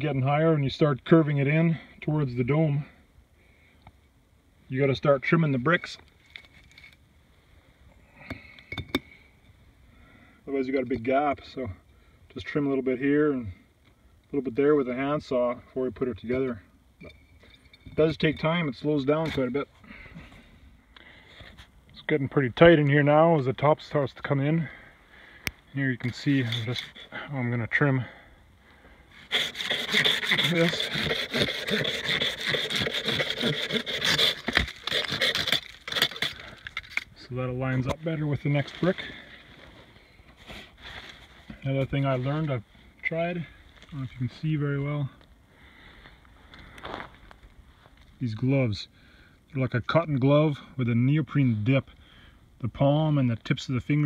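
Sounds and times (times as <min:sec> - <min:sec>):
hand saw rasping through ice: 0:26.2 - 0:27.1, 0:29.2 - 0:37.0.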